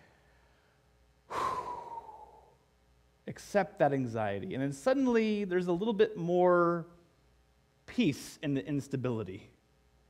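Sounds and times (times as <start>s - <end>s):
man sighing: 1.3s - 2.6s.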